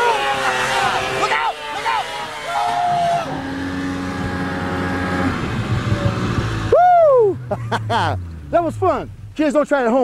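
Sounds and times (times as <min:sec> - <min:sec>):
man shouting: 0:00.0 - 0:03.4
snowmobile engine running: 0:00.0 - 0:10.0.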